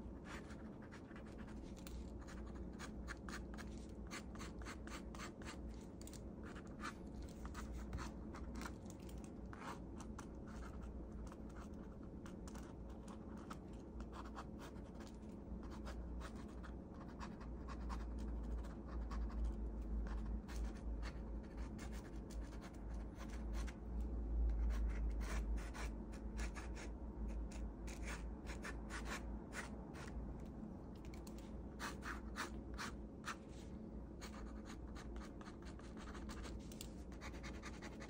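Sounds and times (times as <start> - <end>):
pen scratching on paper: 0.2 - 5.6, 9.5 - 19.4, 24.6 - 26.9, 27.5 - 30.1, 31.8 - 33.4, 34.2 - 38.0.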